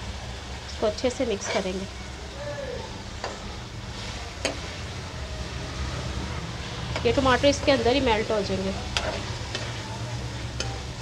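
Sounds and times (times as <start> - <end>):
meat sizzling in a frying pan: 0.0 - 11.0.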